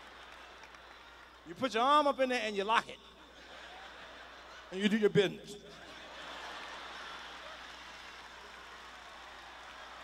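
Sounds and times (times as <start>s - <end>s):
faint applause and crowd noise: 0.0s - 1.5s, 5.9s - 10.0s.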